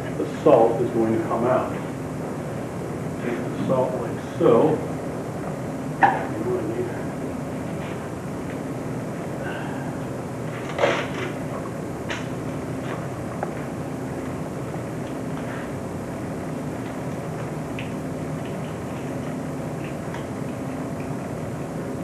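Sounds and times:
low room hum: 0.0 - 22.0.

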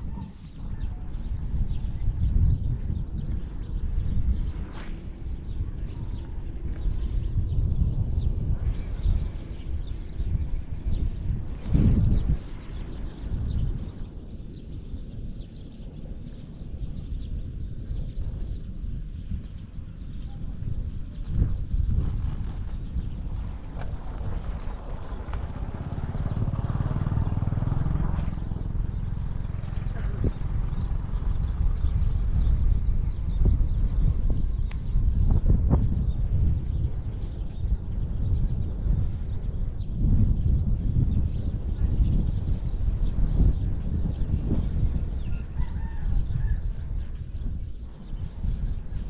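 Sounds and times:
wind buffeting microphone: 0.0 - 49.0.

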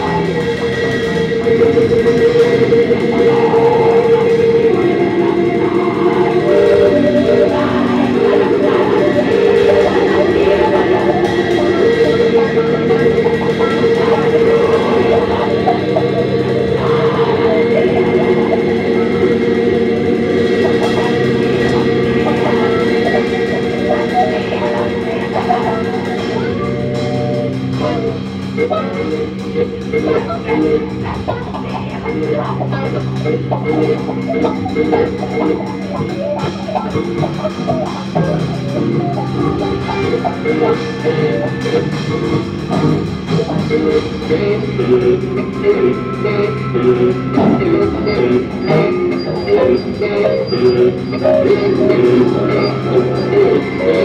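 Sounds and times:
electric guitar: 0.0 - 54.0
live band playing: 0.0 - 54.0
steady bass tone: 0.0 - 54.0.

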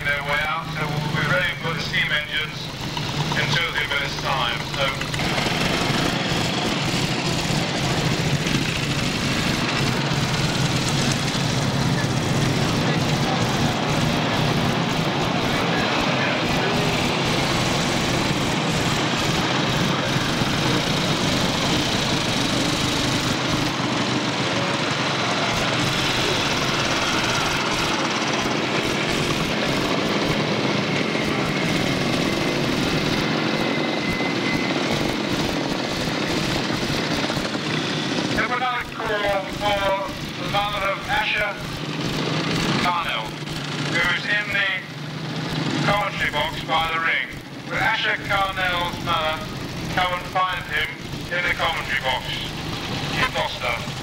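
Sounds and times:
man's voice: 0.0 - 2.7, 3.4 - 5.0
motorcycle engines running: 0.0 - 54.0.

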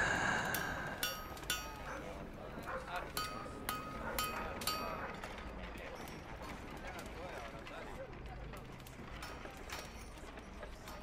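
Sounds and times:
faint voices: 0.0 - 1.2
dog barking: 1.9 - 3.0, 3.9 - 5.2.

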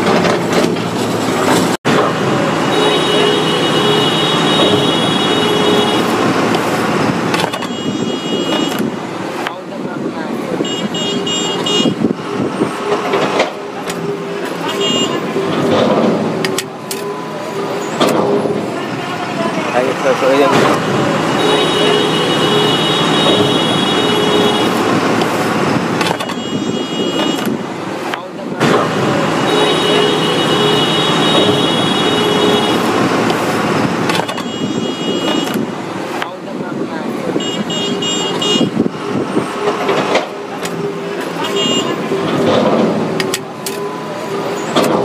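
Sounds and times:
road traffic: 0.0 - 45.0
vehicle horns honking: 2.2 - 9.1, 10.5 - 28.0, 28.6 - 36.1, 37.1 - 45.0.

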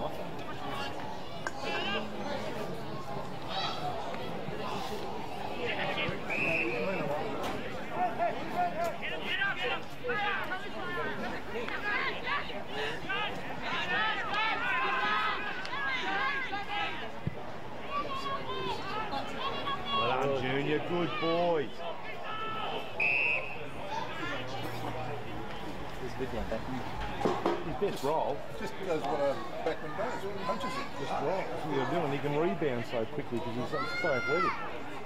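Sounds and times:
people chattering: 0.0 - 35.0.

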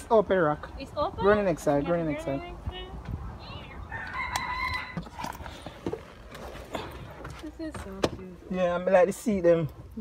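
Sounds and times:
rooster crowing: 3.8 - 5.4.

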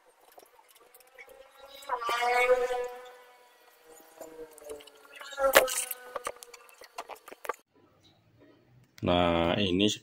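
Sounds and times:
insect buzzing: 1.2 - 7.6.

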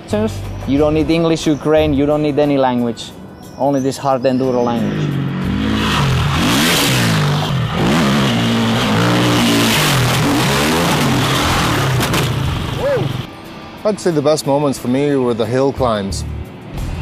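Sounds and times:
dirt bike engine revving: 4.8 - 13.3.

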